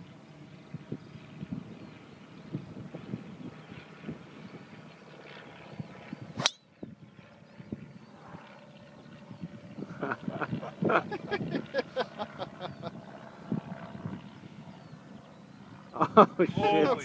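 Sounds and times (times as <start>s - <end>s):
golf club swish: 6.4s - 6.6s
golf club striking ball: 6.4s - 6.7s.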